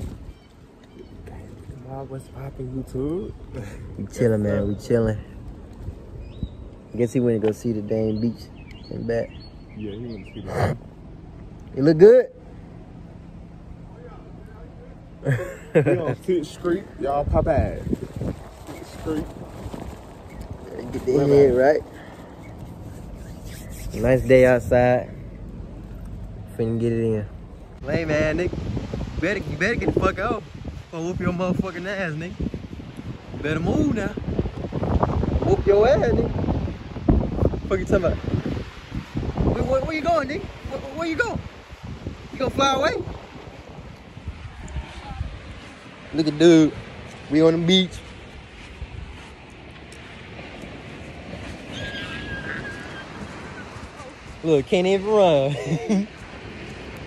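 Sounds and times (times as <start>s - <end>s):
wind buffeting microphone: 0.0s - 11.2s, 15.8s - 57.0s.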